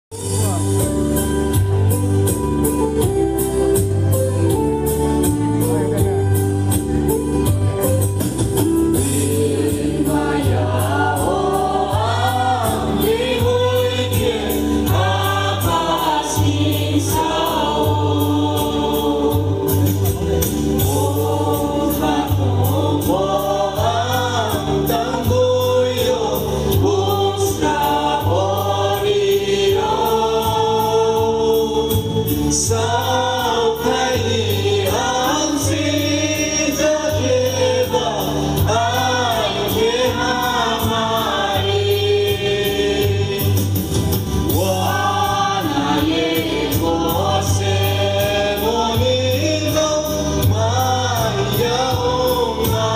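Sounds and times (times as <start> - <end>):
low backing beat with percussion: 0.1 - 52.9
choir singing a gospel hymn: 0.7 - 52.9.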